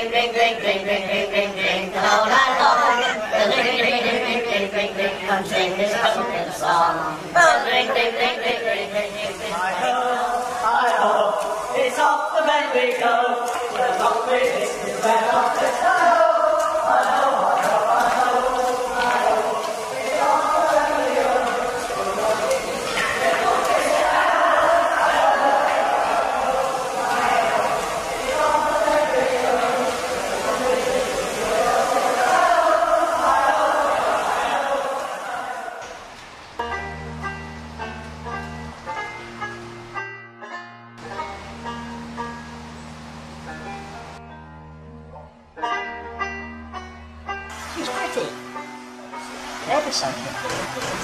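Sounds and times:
group of voices singing: 0:00.0 - 0:36.0
plucked string music: 0:36.6 - 0:51.0.

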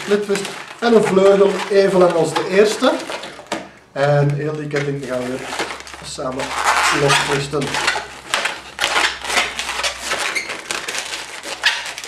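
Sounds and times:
balloon squeaking and rubbing: 0:00.0 - 0:03.6, 0:04.5 - 0:12.0.

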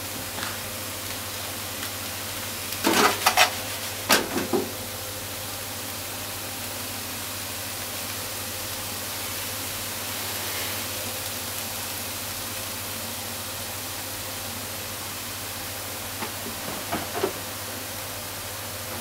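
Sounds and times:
food sizzling in frying pan: 0:00.0 - 0:19.0.

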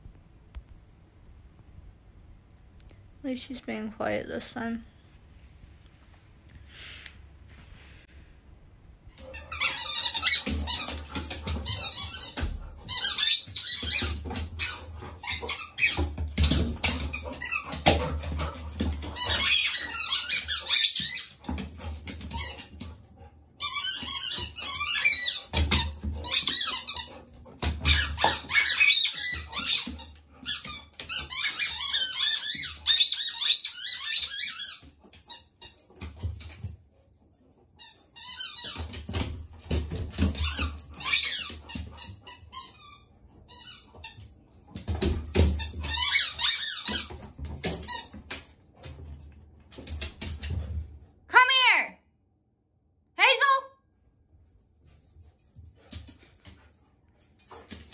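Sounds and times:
dog squeaks and clicks: 0:09.1 - 0:23.0, 0:23.6 - 0:36.7, 0:37.7 - 0:50.6.

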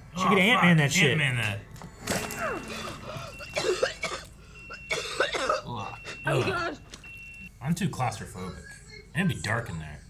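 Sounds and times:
person coughing: 0:02.7 - 0:06.8.

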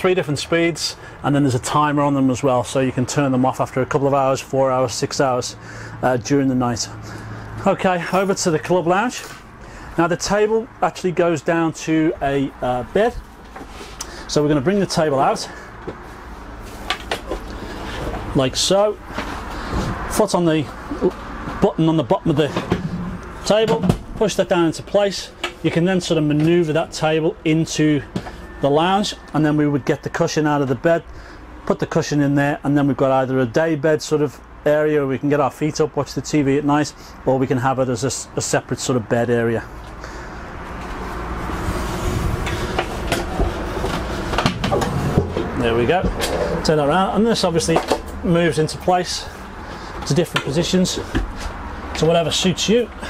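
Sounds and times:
low rumbling noise: 0:05.5 - 0:31.4, 0:39.7 - 0:53.0.

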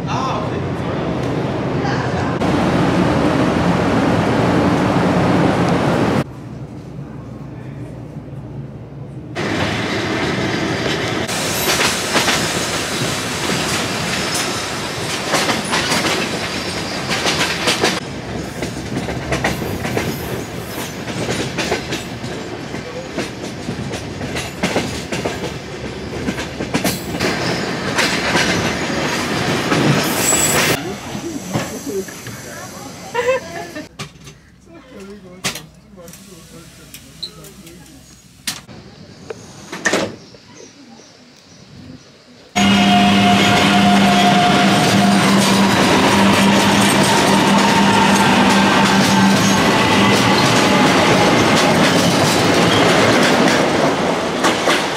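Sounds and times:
train running noise: 0:00.0 - 0:34.4, 0:42.6 - 0:54.9
wheels clacking over rail joints: 0:10.8 - 0:30.8, 0:42.8 - 0:54.9.

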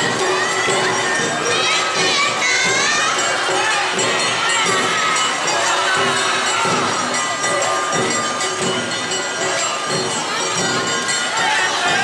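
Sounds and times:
festival music: 0:00.0 - 0:12.0
high voices shouting dance calls: 0:00.0 - 0:12.0.

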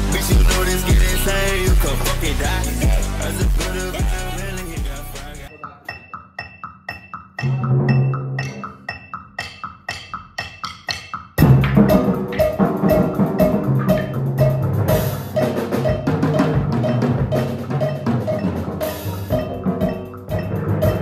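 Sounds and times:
drum kit and timpani: 0:00.0 - 0:05.5, 0:07.4 - 0:21.0.

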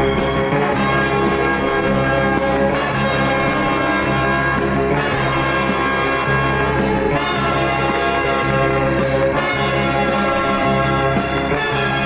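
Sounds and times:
film score with brass chords: 0:00.0 - 0:12.0.

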